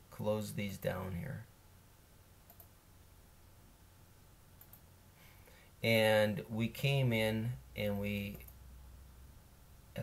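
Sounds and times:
computer mouse clicks: 2.5s - 2.7s, 4.6s - 4.9s.

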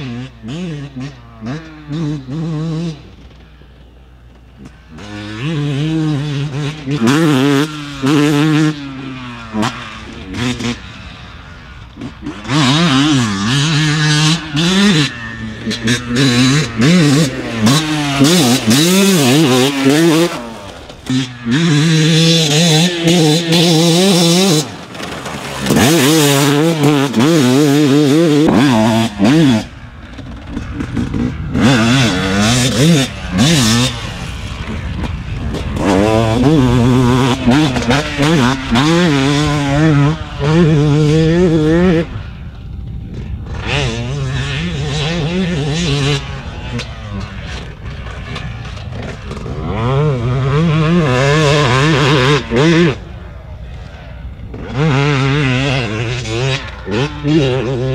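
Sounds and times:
two-stroke motorcycle engine revving: 0.0s - 57.9s.

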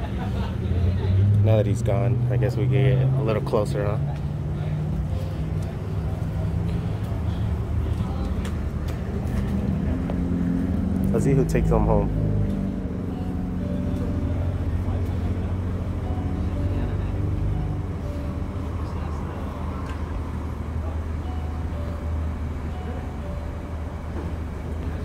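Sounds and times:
idling fire engine rumble: 2.3s - 25.0s.

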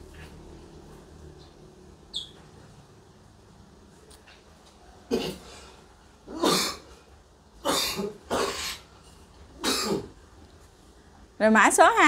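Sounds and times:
person coughing: 5.1s - 5.5s, 6.3s - 6.9s, 7.6s - 8.8s, 9.6s - 10.2s.

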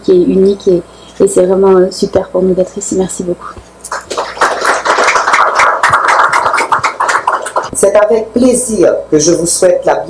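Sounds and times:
audience applauding: 3.9s - 7.7s.

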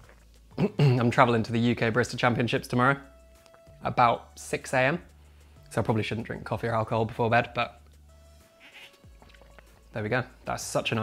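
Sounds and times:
faint background music: 0.0s - 11.0s
soft slurp from a glass: 8.6s - 9.8s.

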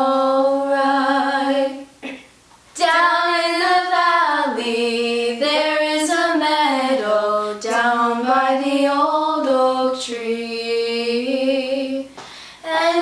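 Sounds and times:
girls singing a cappella: 0.0s - 2.2s, 2.8s - 13.0s.

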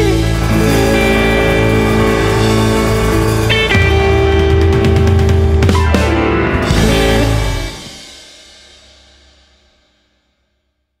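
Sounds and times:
electric guitar chord: 0.0s - 8.1s
cymbal crash: 0.0s - 10.3s.

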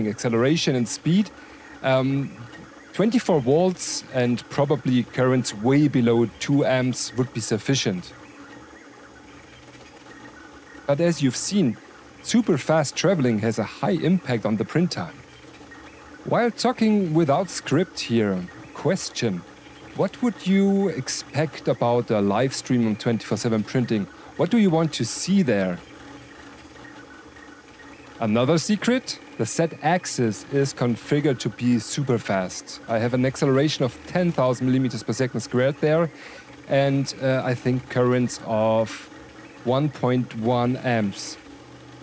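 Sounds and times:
voiceover speech: 0.0s - 8.2s, 10.9s - 15.2s, 16.2s - 19.4s, 20.0s - 25.8s, 28.2s - 36.1s, 36.7s - 39.1s, 39.7s - 41.4s
three d printer fans hissing: 0.0s - 42.0s.

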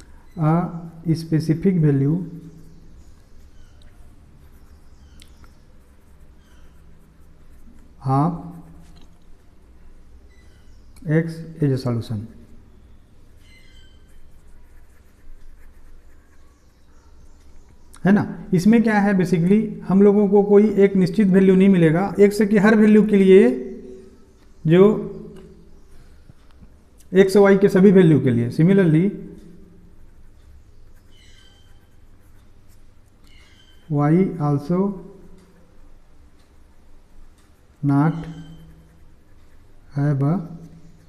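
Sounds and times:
man speaking: 0.4s - 2.4s, 11.0s - 12.4s, 18.0s - 23.8s, 24.6s - 25.3s, 27.1s - 29.3s, 33.9s - 35.1s, 37.8s - 38.5s, 39.9s - 40.6s.

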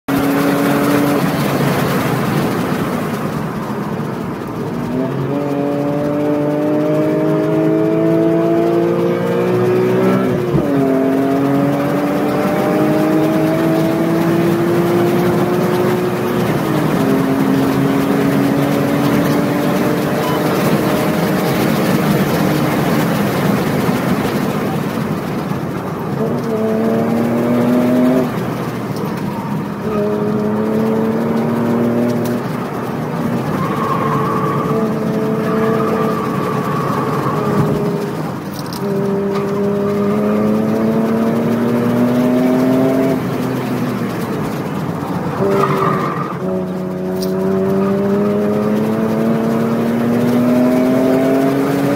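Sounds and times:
car engine at full throttle: 0.0s - 51.9s.

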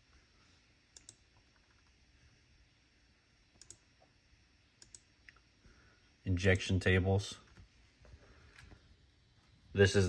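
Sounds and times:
computer mouse clicks: 0.9s - 1.9s, 3.6s - 3.9s, 4.8s - 5.4s.

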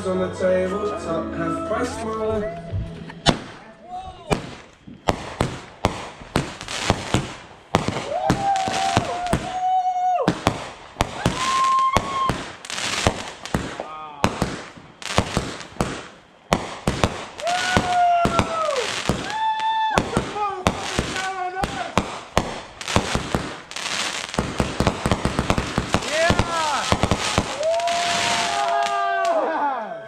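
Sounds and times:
held pitched tones: 0.0s - 4.9s
fireworks bangs and crackles: 3.2s - 29.4s.

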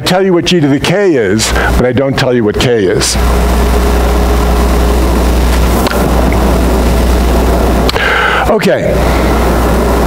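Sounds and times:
low hum: 0.0s - 10.0s
microphone hiss: 0.0s - 10.0s.

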